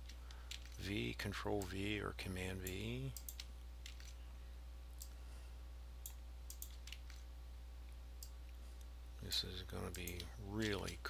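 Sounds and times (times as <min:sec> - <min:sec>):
keyboard and mouse clicks: 0:00.0 - 0:00.8, 0:02.6 - 0:04.2, 0:06.0 - 0:07.2, 0:09.8 - 0:11.0
low electrical hum: 0:00.0 - 0:11.0.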